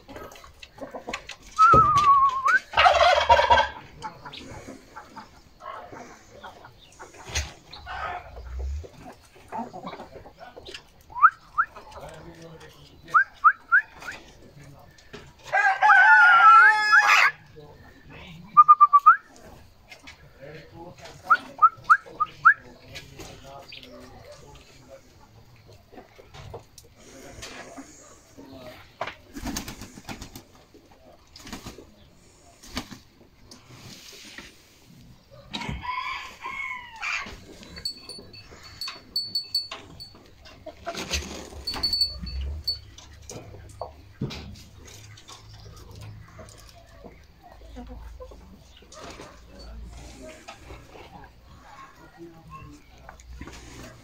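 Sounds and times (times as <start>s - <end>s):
chickens pecking and scratching: 0.0s - 54.0s
chicken calling: 0.8s - 10.1s
rooster crowing: 15.5s - 17.4s, 35.5s - 37.4s.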